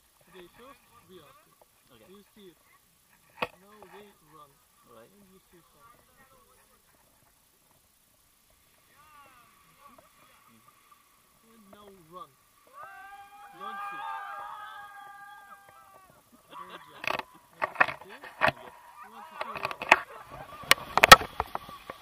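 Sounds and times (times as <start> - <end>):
people calling out: 12.6 - 20.7.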